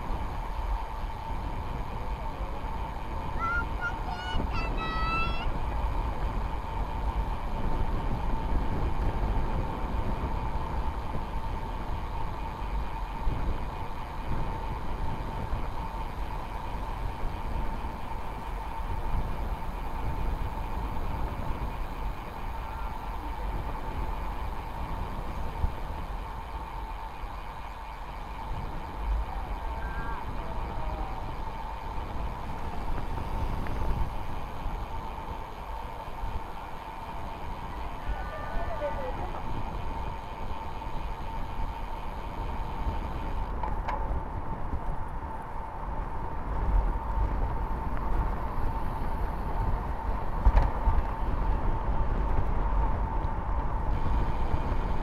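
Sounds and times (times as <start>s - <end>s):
bike tyres on asphalt: 0.0s - 55.0s
faint high whine: 11.1s - 44.1s.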